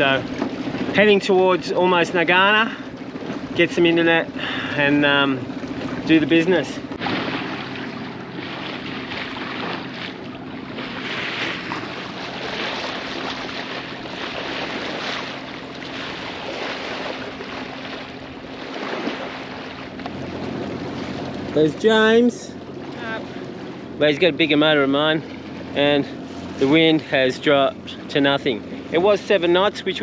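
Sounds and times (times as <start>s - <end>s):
water rushing along boat hull: 0.0s - 30.0s.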